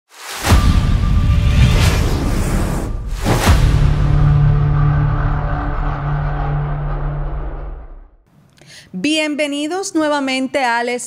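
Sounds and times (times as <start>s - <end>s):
deep rumble: 0.5s - 8.2s.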